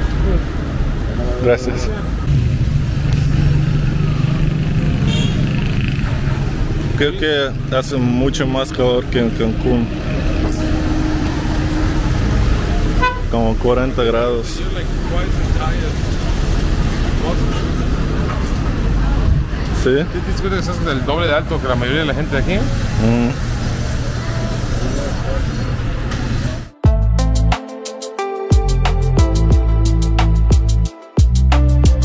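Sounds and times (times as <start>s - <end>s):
low traffic rumble: 0.0s - 27.6s
car driving past: 0.1s - 26.6s
faint voices: 14.6s - 26.8s.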